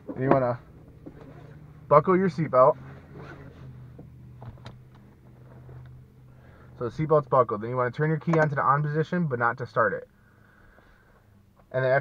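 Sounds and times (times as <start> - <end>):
seat belt pulled across: 2.8 - 3.8.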